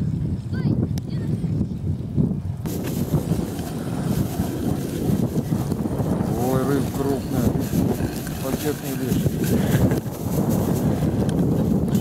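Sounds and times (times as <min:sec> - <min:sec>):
wind buffeting microphone: 0:00.0 - 0:12.0
hiss of wind: 0:02.6 - 0:12.0.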